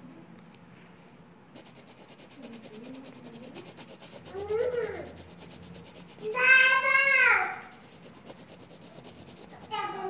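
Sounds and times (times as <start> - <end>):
hand rubbing paper: 1.5 - 10.0.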